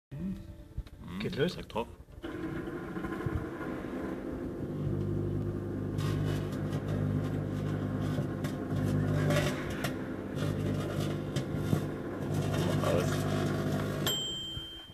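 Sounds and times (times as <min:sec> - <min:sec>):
microwave oven humming: 0:02.2 - 0:14.9
crackles and snaps of arcing: 0:04.2 - 0:14.1.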